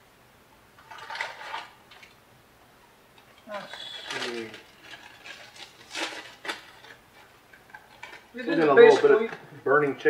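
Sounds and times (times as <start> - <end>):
wrapper crackle: 3.4 - 9.2
snack wrapper crinkling: 3.6 - 8.3.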